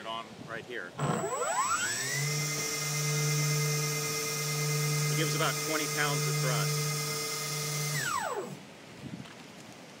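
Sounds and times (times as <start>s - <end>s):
faint wind noise: 0.0s - 3.0s, 7.9s - 10.0s
motor whine spinning down: 1.0s - 8.6s.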